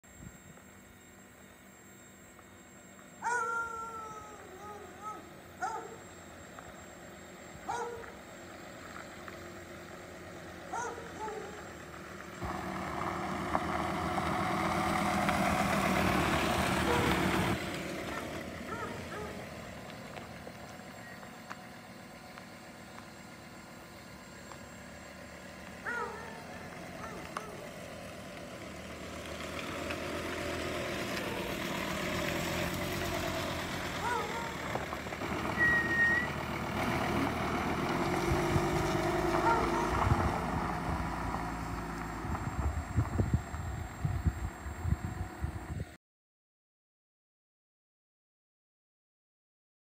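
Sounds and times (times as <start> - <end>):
diesel pickup driving slowly: 0.1 - 46.0
tyres on gravel: 4.8 - 44.8.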